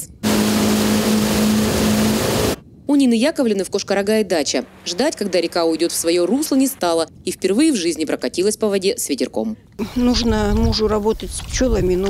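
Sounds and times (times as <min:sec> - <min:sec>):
outboard motor droning: 0:00.2 - 0:02.6
rushing water and wind: 0:04.4 - 0:07.3.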